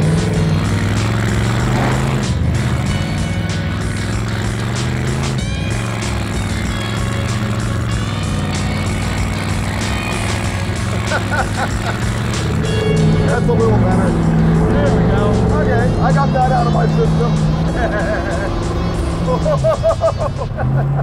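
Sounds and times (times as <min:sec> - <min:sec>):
tyres spinning in dirt: 0:00.0 - 0:14.0
background music: 0:00.0 - 0:21.0
car engine revving: 0:00.0 - 0:21.0
people shouting and laughing: 0:16.8 - 0:21.0.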